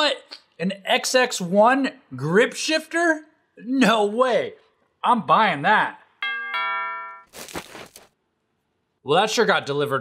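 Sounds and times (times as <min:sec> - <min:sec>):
ding-dong doorbell chime: 0:06.2 - 0:07.3.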